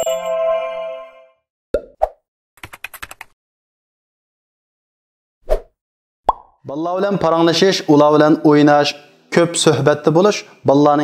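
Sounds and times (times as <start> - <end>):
bright chime: 0.0 - 1.3.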